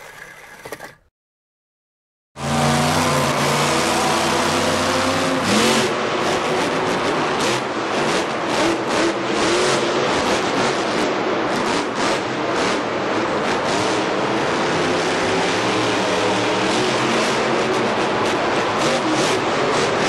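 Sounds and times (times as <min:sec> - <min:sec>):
vehicle engine revving: 0:02.4 - 0:20.0.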